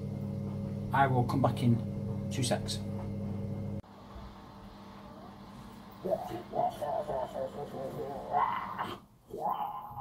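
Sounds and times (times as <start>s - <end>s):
kitchen appliance humming: 0.0s - 6.6s.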